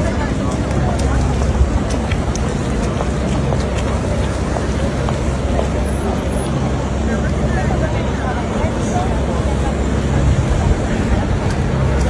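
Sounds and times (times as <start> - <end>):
people chattering: 0.0 - 12.0
traffic rumble: 0.0 - 12.0.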